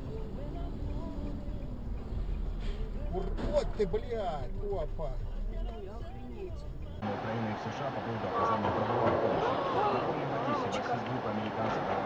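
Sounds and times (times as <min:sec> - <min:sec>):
road noise inside car: 0:00.0 - 0:12.0.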